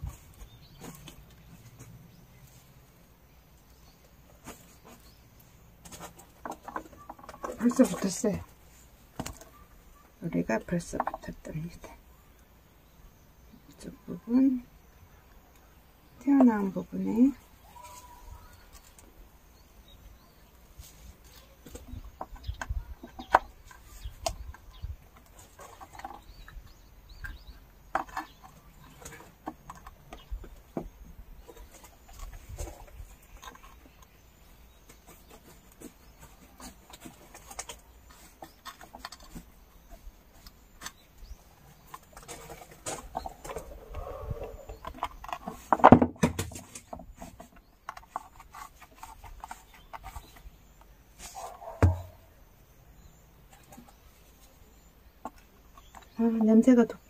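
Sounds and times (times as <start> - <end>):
rocks knocking on stone: 51.8 - 52.2.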